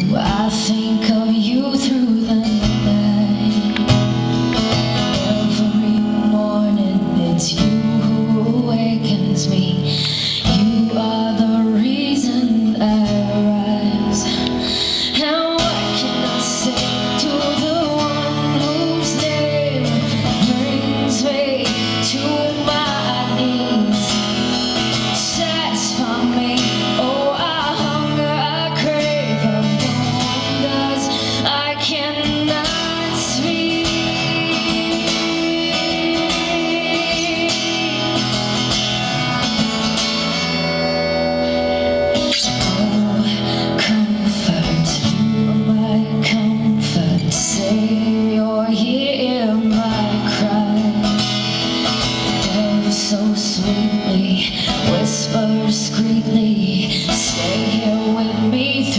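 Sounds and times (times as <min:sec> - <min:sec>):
woman singing into microphone: 0:00.0 - 0:39.6, 0:40.3 - 0:58.9
acoustic guitar strumming: 0:00.0 - 0:58.9.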